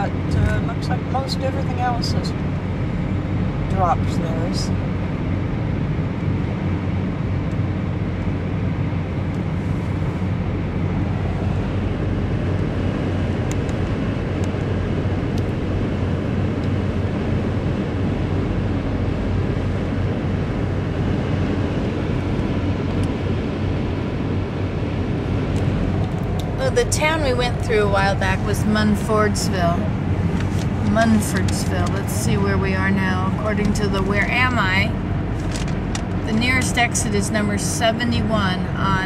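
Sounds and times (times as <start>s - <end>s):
road and tyre noise in car: 0.0s - 39.0s.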